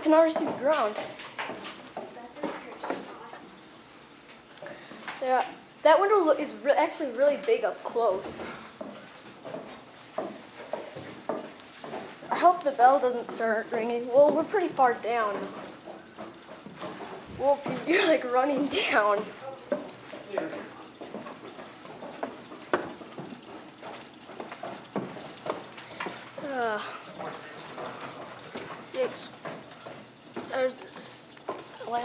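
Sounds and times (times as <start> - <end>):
footsteps going down stairs: 0.0 - 5.6, 7.5 - 32.0.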